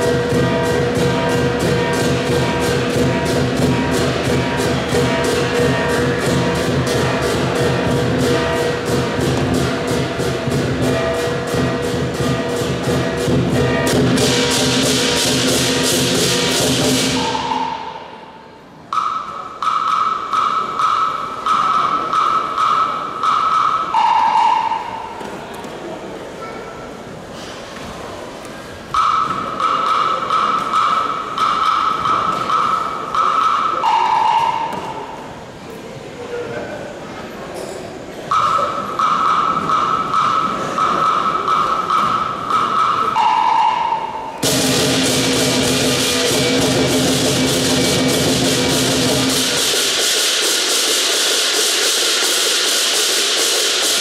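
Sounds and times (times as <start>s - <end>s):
drum gong and cymbal ensemble: 0.0s - 25.3s, 28.9s - 35.5s, 38.3s - 54.0s
sparse percussion strikes: 0.0s - 25.5s, 28.9s - 35.5s, 38.3s - 54.0s
ringing tone: 22.2s - 25.1s, 38.3s - 44.3s.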